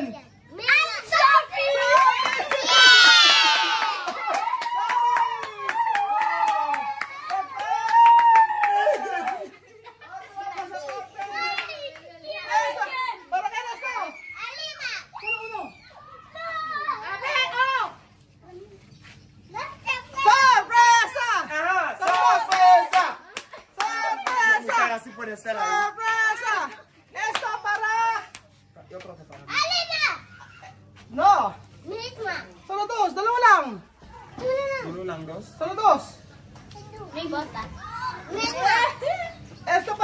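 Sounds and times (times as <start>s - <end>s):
children shouting: 0.6s - 18.0s
children clapping: 1.8s - 9.6s, 10.4s - 12.2s, 22.0s - 24.7s, 26.7s - 28.4s
hand claps: 22.0s - 24.5s, 26.7s - 29.4s.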